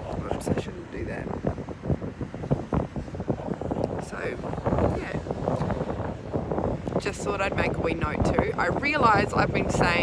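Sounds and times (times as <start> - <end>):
wind buffeting microphone: 0.0 - 10.0
woman's voice: 6.9 - 10.0.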